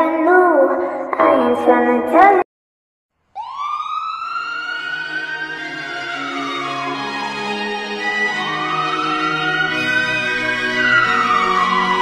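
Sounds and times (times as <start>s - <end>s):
siren-like wail: 3.3s - 12.0s.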